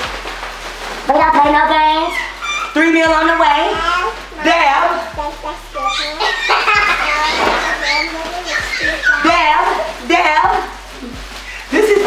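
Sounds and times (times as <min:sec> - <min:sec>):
high-pitched helium voices chattering: 0:01.1 - 0:12.0.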